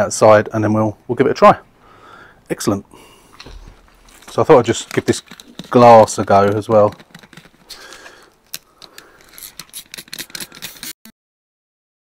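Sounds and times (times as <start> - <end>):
faint clicks and light scraping: 3.3 - 10.9.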